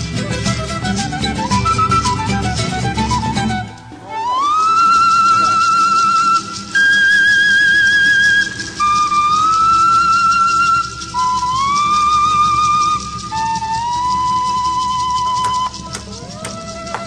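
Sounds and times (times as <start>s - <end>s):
flute-like wind instrument melody: 0.0s - 17.0s.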